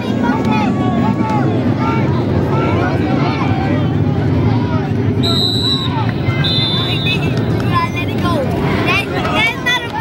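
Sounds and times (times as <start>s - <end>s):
stadium crowd chatter: 0.0s - 10.0s
referee's whistle blasts: 5.2s - 7.4s.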